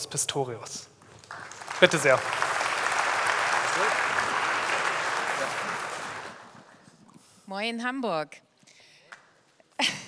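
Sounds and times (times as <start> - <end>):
audience applauding: 1.1 - 6.7.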